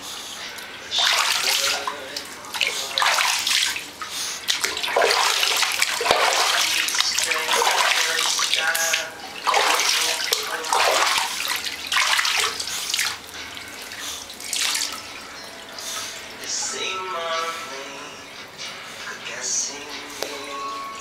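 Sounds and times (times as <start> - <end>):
water splashing in bathtub: 0.0 - 20.9.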